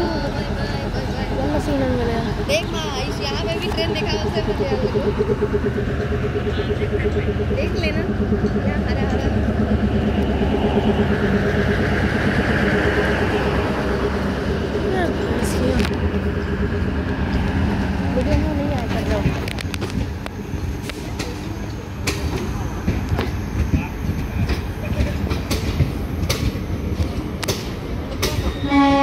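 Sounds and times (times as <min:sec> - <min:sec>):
train engine humming: 0:00.0 - 0:29.0
wheels clacking over rail joints: 0:11.0 - 0:29.0.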